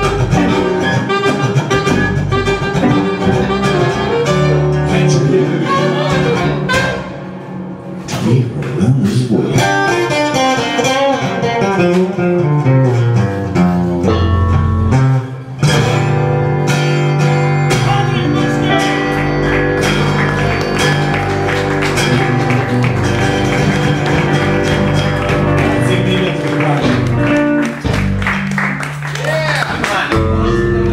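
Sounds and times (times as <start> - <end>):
live blues band playing: 0.0 - 30.9.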